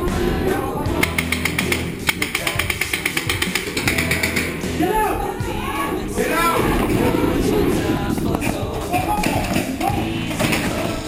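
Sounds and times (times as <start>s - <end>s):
indistinct voices: 0.0s - 11.0s
paintball markers firing: 1.0s - 4.5s.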